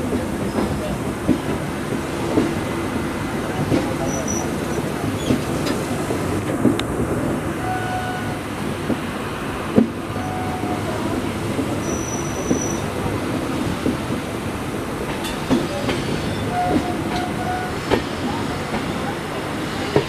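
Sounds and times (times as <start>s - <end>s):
rumble of train wheels on rail: 0.0s - 20.0s
high wheel squeals: 11.8s - 12.8s.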